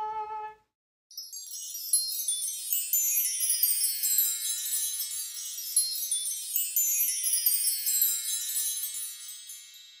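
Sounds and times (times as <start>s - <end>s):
high shimmering chimes: 1.1s - 10.0s.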